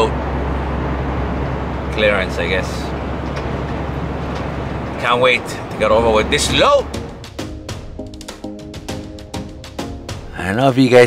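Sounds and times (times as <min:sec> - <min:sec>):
tyre and road noise: 0:00.0 - 0:08.0
truck engine drone: 0:00.0 - 0:11.0.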